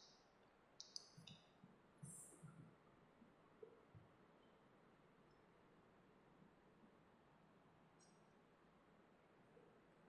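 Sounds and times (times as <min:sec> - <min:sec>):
faint sharp clicks: 0:00.8 - 0:02.6.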